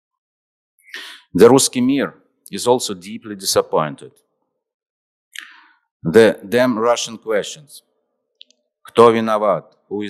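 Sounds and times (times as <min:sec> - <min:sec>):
sharp intake of breath: 0:00.9 - 0:01.3
man speaking into a microphone: 0:01.0 - 0:04.2, 0:05.4 - 0:07.8, 0:08.9 - 0:10.0.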